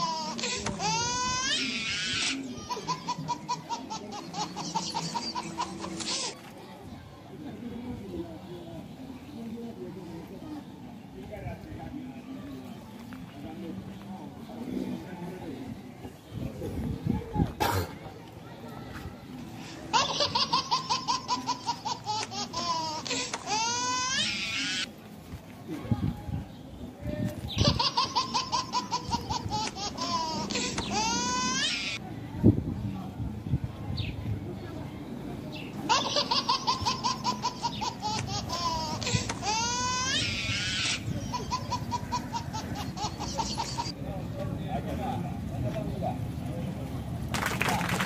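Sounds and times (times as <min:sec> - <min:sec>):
high-pitched comic laughter: 0:00.0 - 0:06.4, 0:19.8 - 0:24.8, 0:27.5 - 0:32.0, 0:35.9 - 0:43.9.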